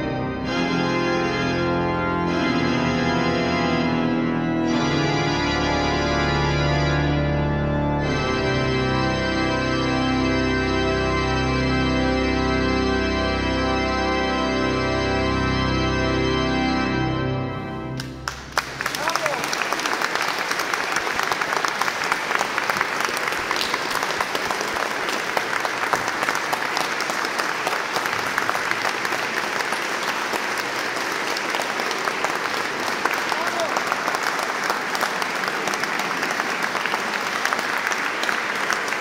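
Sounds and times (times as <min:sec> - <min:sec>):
audience applauding: 0:18.0 - 0:39.0.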